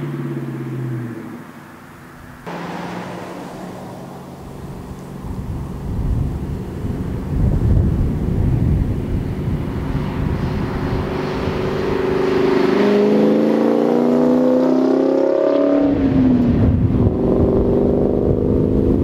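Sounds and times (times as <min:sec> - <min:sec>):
car engine accelerating past: 0:02.5 - 0:07.3, 0:09.2 - 0:19.0.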